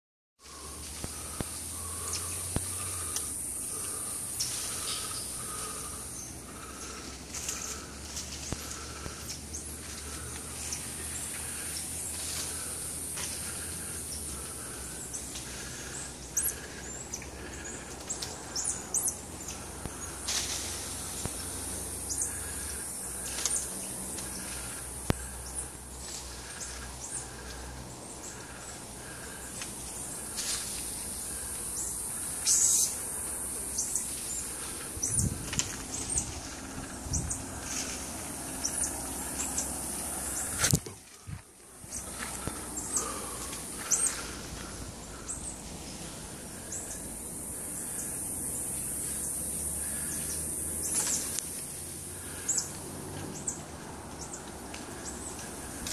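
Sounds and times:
high insect drone: 0.4s - 55.9s
steady high hiss: 0.4s - 55.9s.

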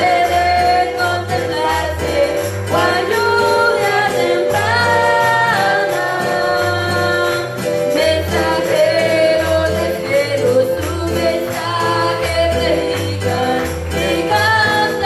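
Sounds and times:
acoustic guitar: 0.0s - 15.0s
keyboard: 0.0s - 15.0s
steady bass line: 0.0s - 15.0s
woman singing worship chorus: 0.0s - 15.0s.

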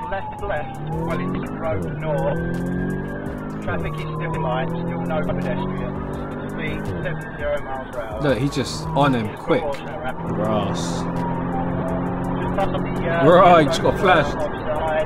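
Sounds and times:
car engine running hard: 0.0s - 15.0s
police siren wailing: 0.0s - 15.0s.

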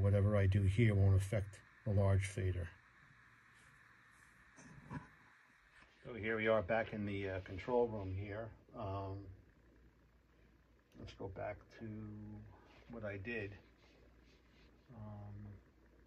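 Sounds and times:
man saying um: 0.0s - 2.7s, 6.1s - 9.3s, 11.0s - 13.6s, 14.9s - 15.6s
faint room hiss: 0.0s - 16.0s
low hum: 0.0s - 16.0s.

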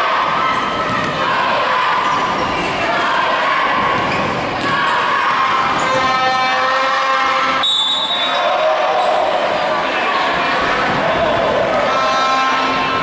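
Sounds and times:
crowd noise and voices: 0.0s - 13.0s
referee's whistle blast: 7.5s - 8.5s.

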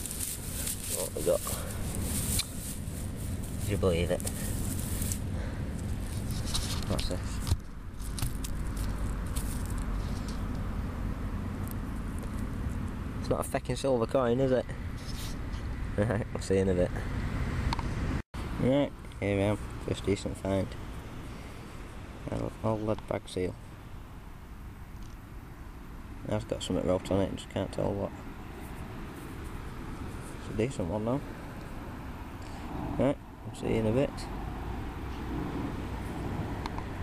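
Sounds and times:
grass and soil rustling by hand: 0.0s - 13.6s, 19.1s - 23.6s, 26.3s - 37.0s
low outdoor background noise: 0.0s - 37.0s.

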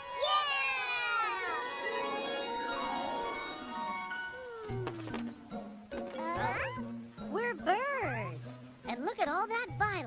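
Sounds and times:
twinkling music cue with glides: 1.2s - 7.5s
soft background music: 1.4s - 10.0s
squeaky cartoon creature calls: 6.2s - 6.9s.

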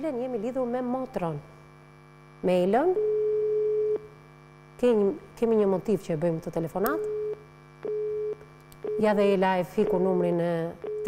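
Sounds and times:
telephone busy tone beeps: 3.0s - 4.1s, 7.0s - 9.2s.

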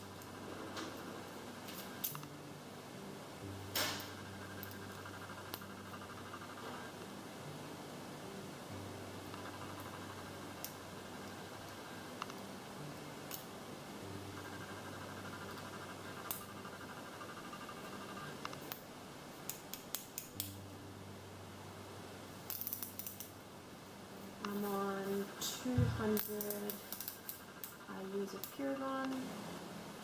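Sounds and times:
faint steady hum: 0.0s - 30.0s
plastic pen clicks and taps: 3.8s - 5.7s, 22.5s - 23.3s, 25.8s - 27.8s.

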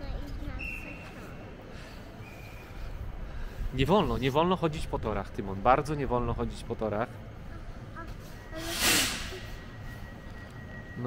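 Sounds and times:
compressed air hissing: 8.6s - 9.7s.

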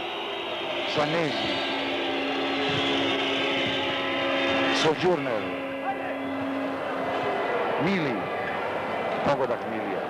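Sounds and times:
crowd of many voices: 0.0s - 10.0s.

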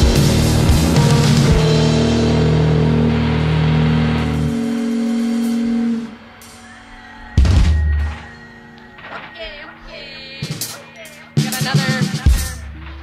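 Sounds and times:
bass note: 0.0s - 6.3s
electric guitar chord ringing: 0.0s - 11.4s.

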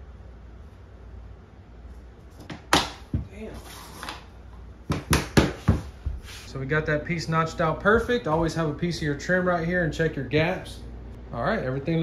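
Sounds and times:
hammer knocking floor plank: 4.9s - 5.9s.

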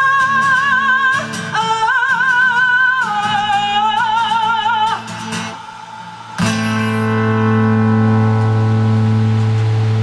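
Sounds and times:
acoustic guitar chord ringing: 0.1s - 10.0s.

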